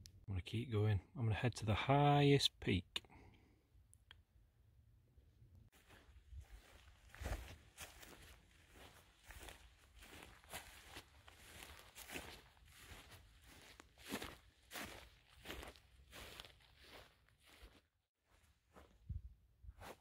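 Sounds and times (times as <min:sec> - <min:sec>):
footsteps through grass: 0:05.7 - 0:19.2, 0:19.8 - 0:20.0.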